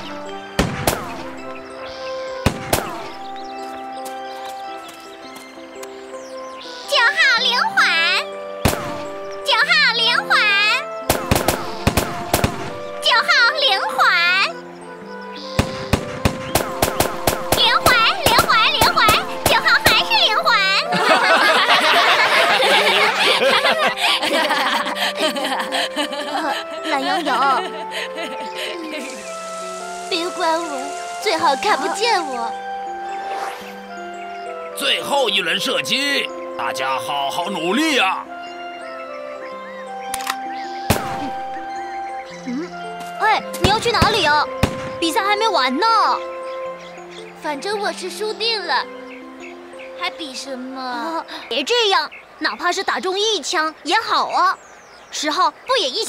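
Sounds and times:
background music: 0:00.0 - 0:56.0
gunshot sound effect: 0:00.6 - 0:01.2, 0:02.5 - 0:03.1, 0:08.6 - 0:09.1, 0:11.1 - 0:12.7, 0:40.9 - 0:41.3, 0:44.6 - 0:45.0
cartoon gunshots: 0:00.6 - 0:01.3, 0:02.5 - 0:03.2, 0:08.6 - 0:09.1, 0:11.1 - 0:12.7, 0:15.6 - 0:20.0, 0:40.9 - 0:41.3.

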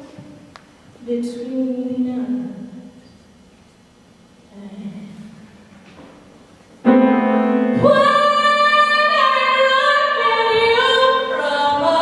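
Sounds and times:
sung vocal tones: 0:07.1 - 0:12.0.

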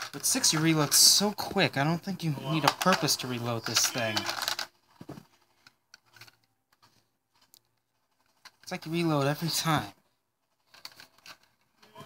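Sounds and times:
plastic clicks and rattles: 0:02.6 - 0:09.4, 0:10.4 - 0:11.9.

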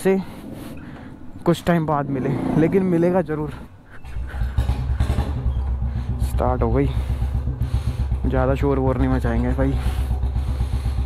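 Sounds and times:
motorcycle engine idling: 0:02.0 - 0:11.0.

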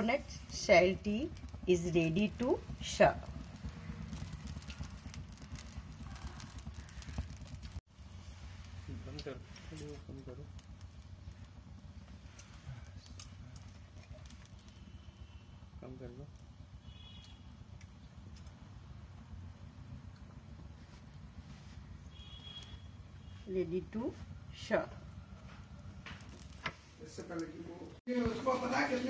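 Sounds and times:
gas burner running: 0:00.0 - 0:29.0.

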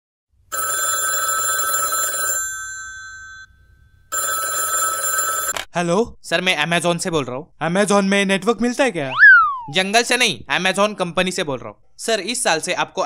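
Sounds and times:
telephone ringing: 0:00.5 - 0:05.7.

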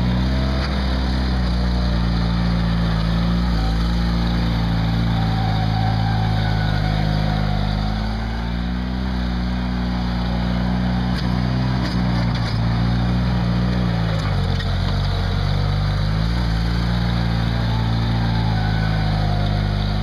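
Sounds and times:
tractor engine running: 0:00.0 - 0:20.0.

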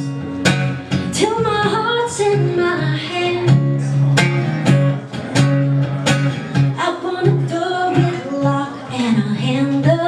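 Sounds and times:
woman singing folk-pop song: 0:00.0 - 0:00.3, 0:00.9 - 0:04.0, 0:06.6 - 0:10.0
strummed acoustic guitar: 0:00.0 - 0:10.0.

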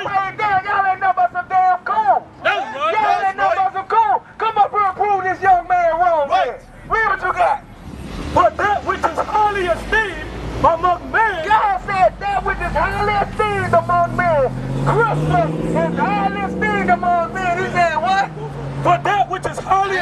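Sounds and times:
loud talking: 0:00.0 - 0:20.0
road traffic: 0:00.0 - 0:20.0
car passing close by: 0:07.7 - 0:11.1, 0:12.0 - 0:20.0.

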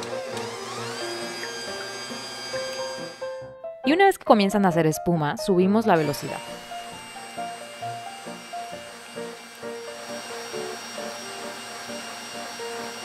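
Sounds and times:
stand mixer motor whining: 0:00.0 - 0:03.5, 0:06.0 - 0:13.0
background music simple melody: 0:00.0 - 0:13.0
whisk whipping in steel bowl: 0:07.0 - 0:13.0.

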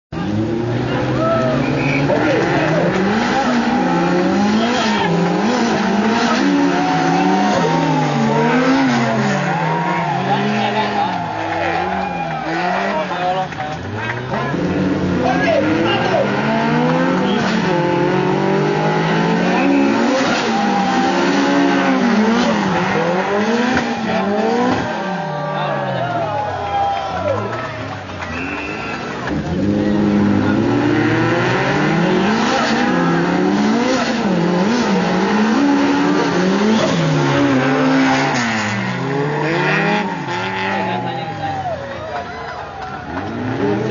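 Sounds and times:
car engines revving hard: 0:00.2 - 0:43.9.

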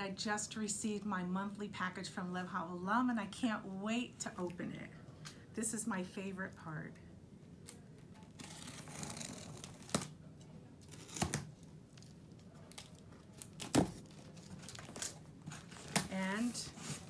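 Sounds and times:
box cutter slitting packing tape: 0:08.4 - 0:10.1, 0:10.9 - 0:11.5
cardboard scraping and rustling: 0:13.7 - 0:17.0.

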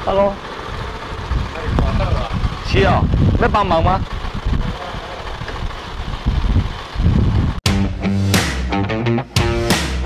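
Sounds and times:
street background noise: 0:00.0 - 0:07.6
wind rumbling on microphone: 0:00.6 - 0:07.6
rock music with guitar: 0:07.6 - 0:10.0.

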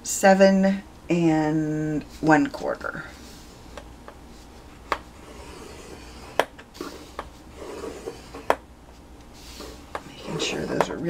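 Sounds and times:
stylus scraping cardstock: 0:04.8 - 0:08.6, 0:09.4 - 0:11.0.

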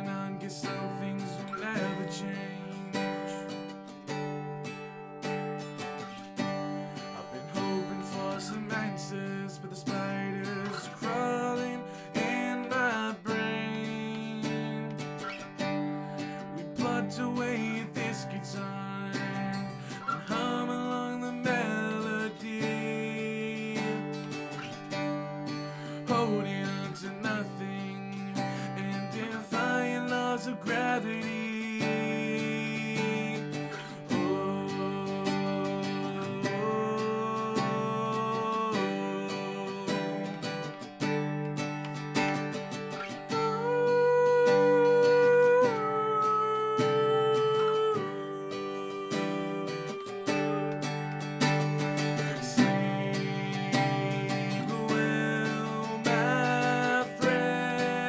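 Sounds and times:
man singing: 0:00.0 - 0:04.8, 0:05.8 - 0:41.3, 0:42.2 - 0:58.0
strummed acoustic guitar: 0:00.0 - 0:58.0.

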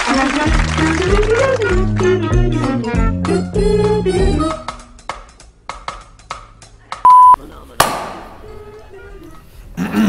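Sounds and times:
electronic beep: 0:07.1 - 0:07.4
hand clap: 0:07.8 - 0:08.4.

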